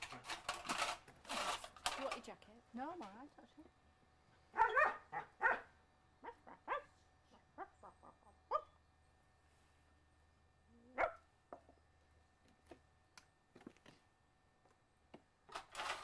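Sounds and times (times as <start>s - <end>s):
dog barking: 4.5s - 6.9s, 8.5s - 8.8s, 11.0s - 11.2s.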